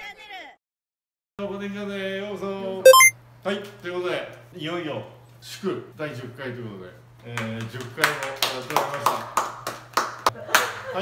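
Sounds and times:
people clapping hands: 0:07.4 - 0:10.8.

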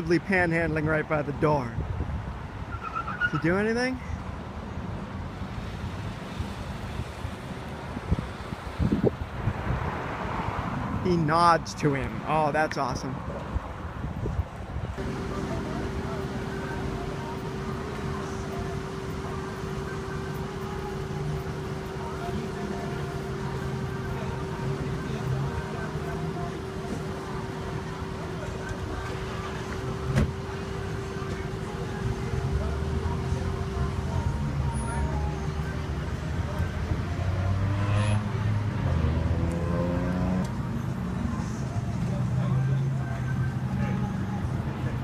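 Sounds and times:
motor vehicle engine humming: 0:14.1 - 0:45.0
faint indistinct voices: 0:15.0 - 0:37.6, 0:41.1 - 0:45.0.

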